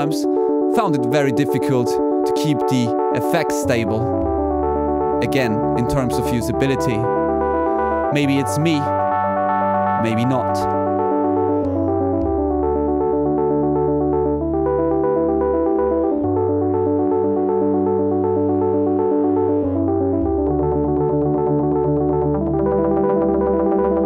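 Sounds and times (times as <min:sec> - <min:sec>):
synthesizer sequenced pattern: 0:00.0 - 0:24.0.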